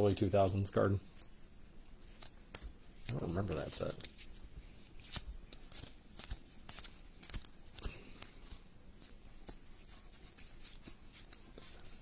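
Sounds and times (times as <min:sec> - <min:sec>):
cards being flipped through: 0:02.0 - 0:12.0.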